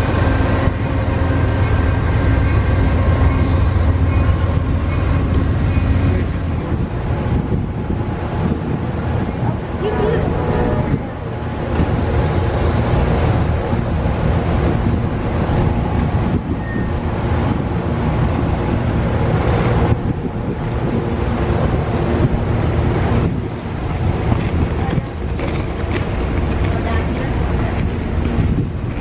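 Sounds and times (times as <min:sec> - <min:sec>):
train wheels rumbling on rail: 0:00.0 - 0:29.0
wind buffeting microphone: 0:00.0 - 0:29.0.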